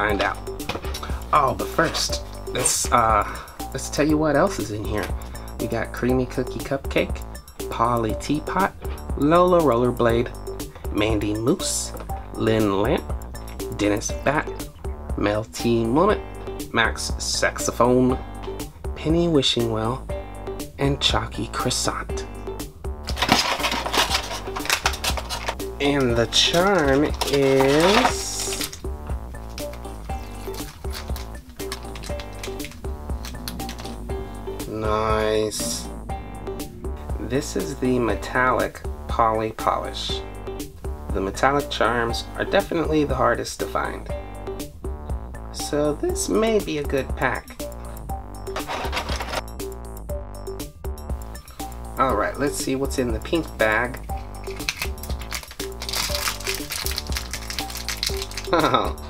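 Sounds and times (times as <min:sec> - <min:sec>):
background music with steady beat: 0:00.0 - 0:59.0
scissors cutting plastic: 0:23.0 - 0:28.8, 0:29.5 - 0:34.0, 0:53.9 - 0:58.7
plastic bag crinkling: 0:23.1 - 0:34.0, 0:54.2 - 0:58.9.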